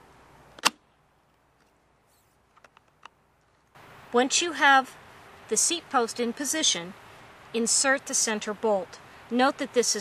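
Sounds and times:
sharp metallic click: 0.6s - 0.8s.

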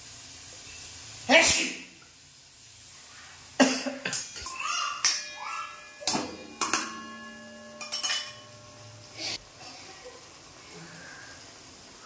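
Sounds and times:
steel spoon clanking on pan: 4.0s - 9.4s.

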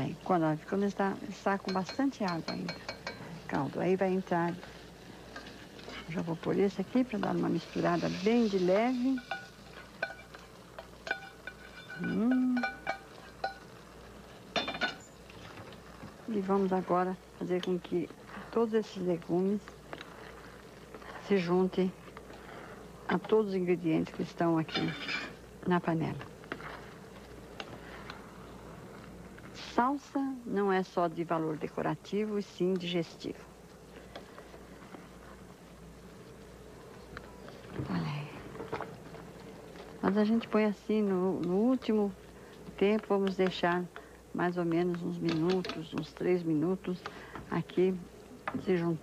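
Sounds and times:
low steady hum: 0.0s - 49.0s
spoon stirring in metal pot: 1.5s - 16.8s, 26.2s - 29.5s
spoon scraping a steel saucepan: 7.3s - 13.6s.

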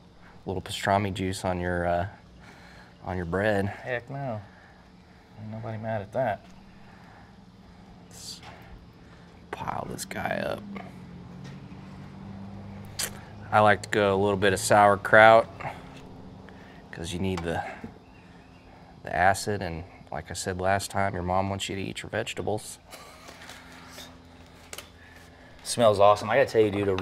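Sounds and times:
low background hum: 0.0s - 27.0s.

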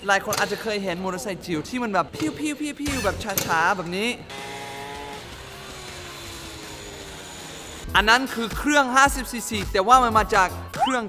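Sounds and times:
mini motorbike motor whirring: 4.3s - 7.9s.

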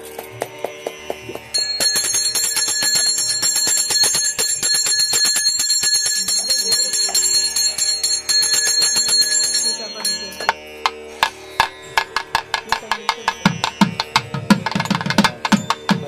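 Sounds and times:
quick percussive beats: 0.0s - 16.0s
brass bell ringing rapidly: 1.5s - 10.8s.

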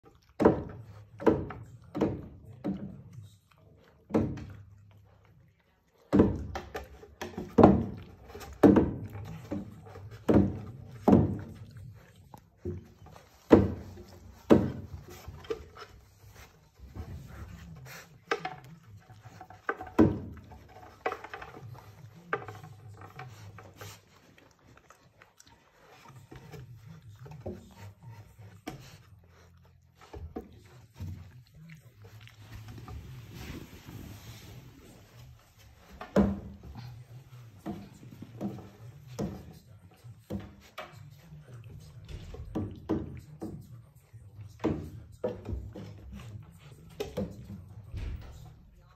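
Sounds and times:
paws thumping on wooden planks: 6.1s - 39.7s.

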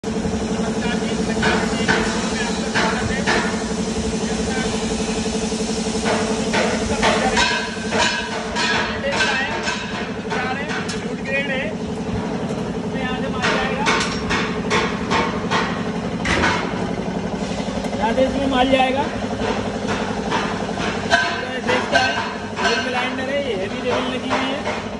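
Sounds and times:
metal knocks and clicks: 6.0s - 11.2s, 13.4s - 17.0s
motor hum: 7.7s - 23.9s.

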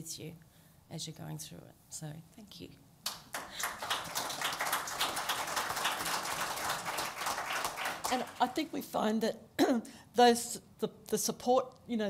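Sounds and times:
audience applauding: 3.1s - 8.6s.

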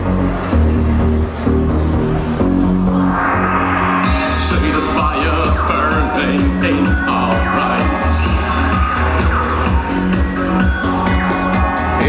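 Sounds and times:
electronic music through club speakers: 0.0s - 12.0s.

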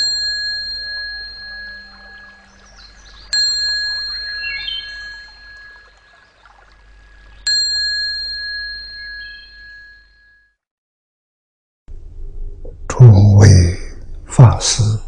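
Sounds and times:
opening music: 0.0s - 6.0s
small bell ringing: 0.0s - 6.3s, 7.4s - 10.6s
faint bird-like chirps: 0.9s - 7.5s, 8.9s - 10.4s.

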